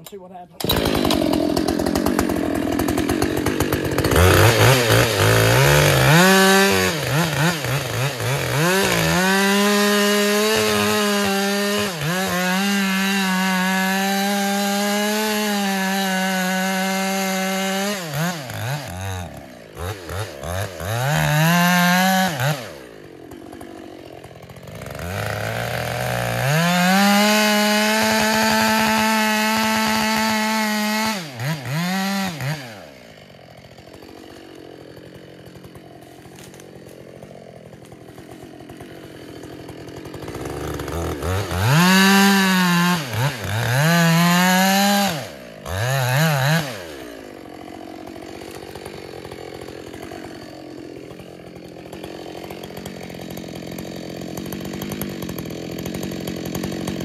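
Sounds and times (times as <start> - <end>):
chainsaw revving and cutting: 0.0 - 57.0.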